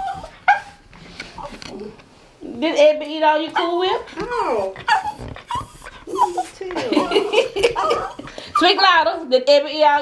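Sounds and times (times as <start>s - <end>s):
small dog yipping: 0.0s - 0.8s, 4.8s - 6.5s.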